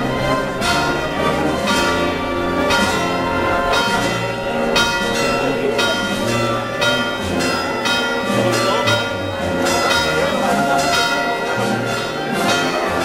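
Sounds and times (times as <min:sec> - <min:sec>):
church bells ringing: 0:00.0 - 0:13.0.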